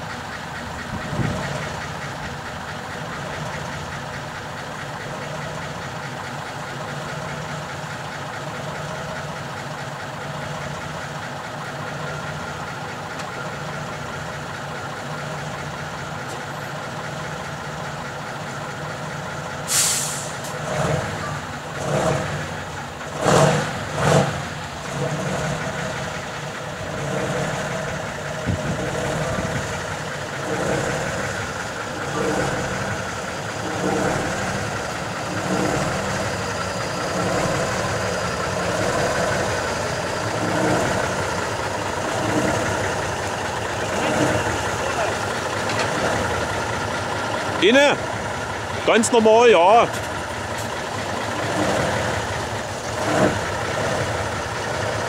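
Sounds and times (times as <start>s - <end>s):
truck diesel engine idling: 0.0s - 55.0s
air hiss: 19.7s - 20.4s.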